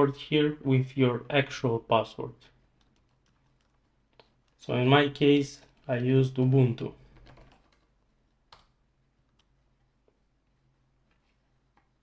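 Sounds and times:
keyboard typing: 0:02.8 - 0:04.6, 0:07.0 - 0:07.9.

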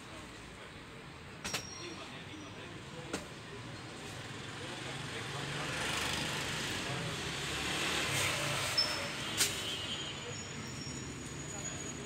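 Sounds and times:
road vehicle passing: 0:04.6 - 0:09.3.

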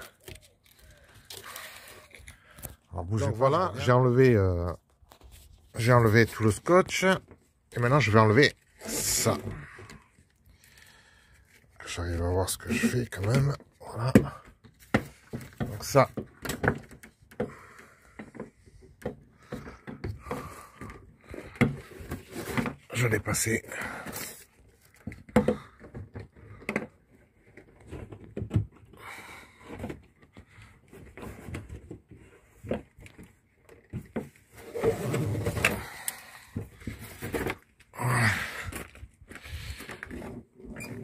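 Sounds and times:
scraping or rubbing: 0:34.5 - 0:35.8.

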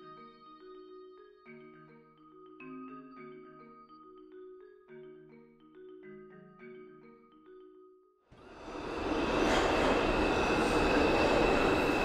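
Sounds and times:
subway train rumble: 0:08.4 - 0:12.0
high squeal: 0:08.5 - 0:12.0.

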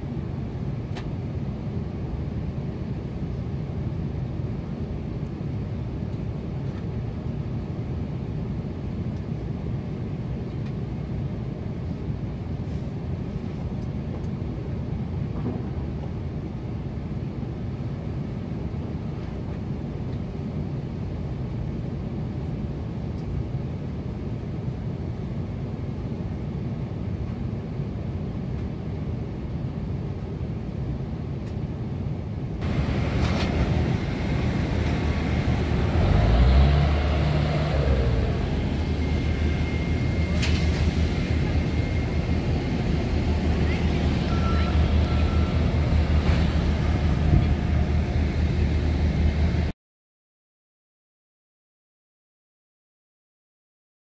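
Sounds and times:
airliner cabin rumble: 0:00.0 - 0:49.7
low machine hum: 0:32.6 - 0:49.7.

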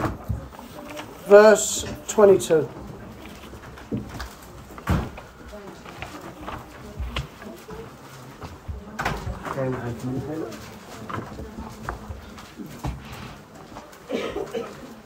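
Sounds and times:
small knocks and rustles: 0:01.8 - 0:14.1.

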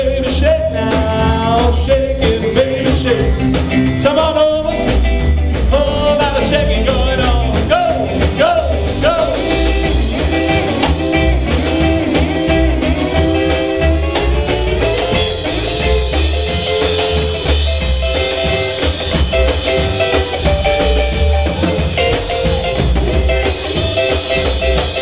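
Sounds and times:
electric guitar bending notes: 0:00.0 - 0:25.0
rockabilly band playing live: 0:00.0 - 0:25.0.

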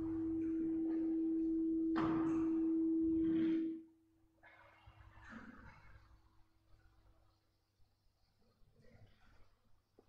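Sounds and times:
steady pure tone: 0:00.0 - 0:03.9.

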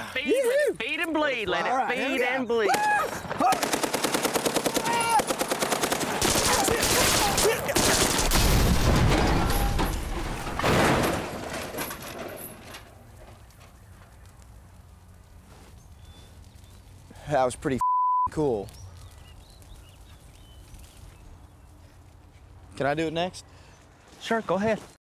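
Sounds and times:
machine gun burst: 0:03.5 - 0:09.8
large explosion: 0:07.9 - 0:11.2.

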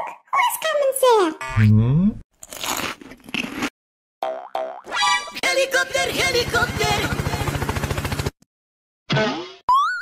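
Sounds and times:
cartoon boing: 0:09.1 - 0:10.0.

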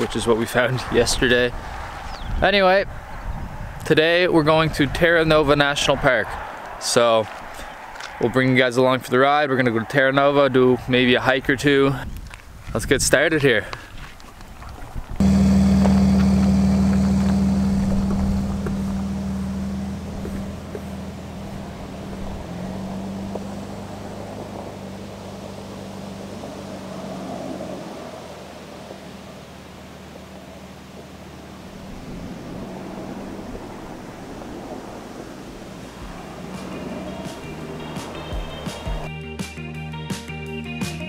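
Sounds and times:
wind on microphone: 0:00.0 - 0:06.8, 0:10.8 - 0:13.2, 0:13.8 - 0:15.2, 0:31.7 - 0:37.8
tyres on gravel: 0:11.9 - 0:27.1, 0:35.7 - 0:39.1
van engine running: 0:15.2 - 0:27.5, 0:35.8 - 0:39.1.

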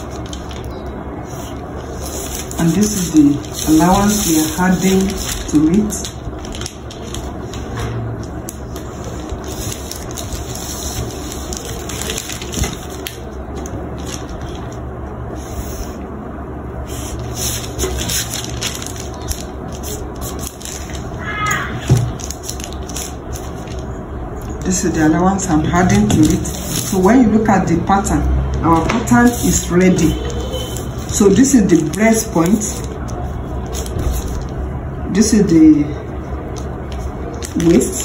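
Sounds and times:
paper rustling and crackling: 0:00.0 - 0:14.8, 0:16.9 - 0:24.9, 0:25.8 - 0:27.4, 0:28.7 - 0:34.7, 0:36.1 - 0:38.0.

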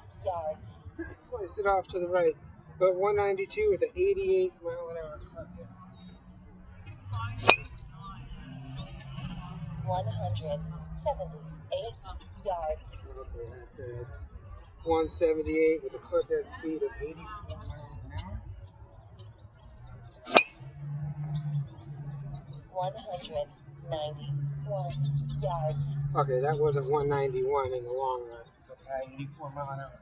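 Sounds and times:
low steady hum: 0:00.0 - 0:30.0
golf club striking ball: 0:07.4 - 0:07.7, 0:20.3 - 0:20.6.

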